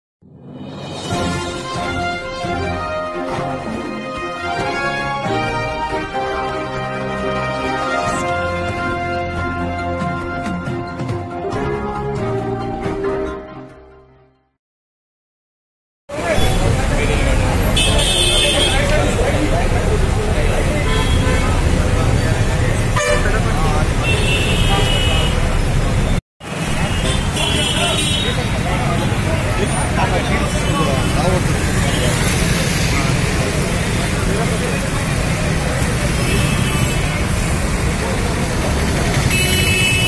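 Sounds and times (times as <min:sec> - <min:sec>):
crowd talking: 0:16.1 - 0:40.0
road traffic: 0:16.1 - 0:40.0
vehicle horns tooting: 0:17.6 - 0:19.3, 0:20.6 - 0:21.8, 0:22.9 - 0:25.7, 0:26.4 - 0:28.6, 0:29.6 - 0:32.6, 0:36.0 - 0:37.5, 0:39.2 - 0:40.0.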